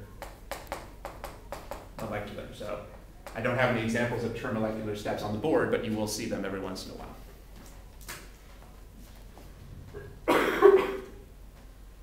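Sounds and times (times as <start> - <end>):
chalk tapping on blackboard: 0.2 - 2.2.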